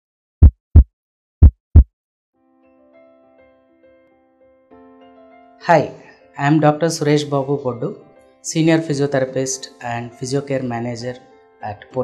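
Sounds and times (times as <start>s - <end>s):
heartbeat thumps: 0.4s - 1.9s.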